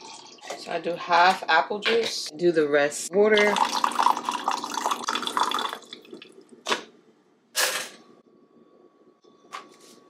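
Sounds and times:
water pouring into plastic cup: 3.4s - 6.5s.

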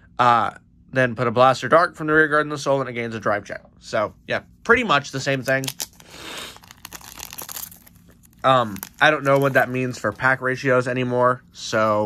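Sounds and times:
foil wrapper tearing and crinkling: 5.4s - 10.5s.

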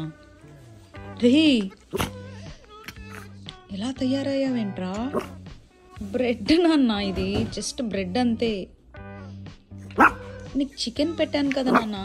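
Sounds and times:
dog yipping and whining: 9.8s - 10.5s.

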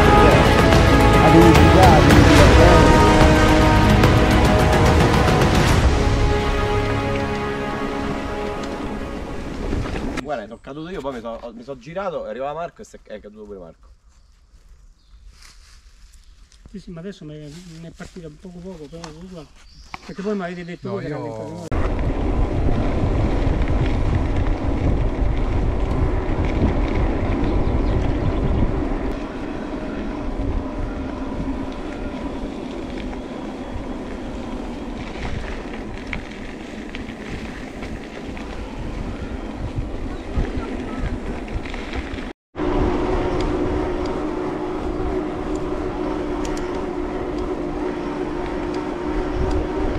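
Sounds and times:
tyres rolling on road: 0.0s - 10.2s, 21.7s - 49.9s
wind buffeting microphone: 21.7s - 49.9s
electric drive whine: 42.6s - 49.9s.

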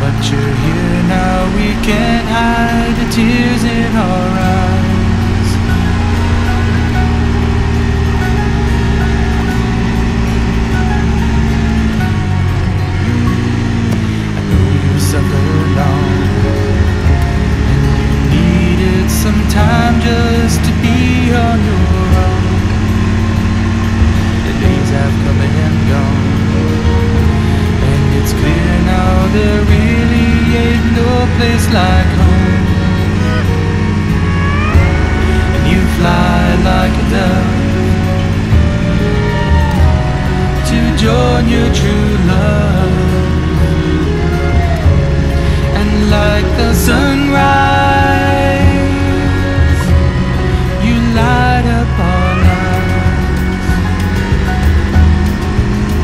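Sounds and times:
motorcycle engine running: 0.0s - 56.0s
song with singing: 0.0s - 56.0s.

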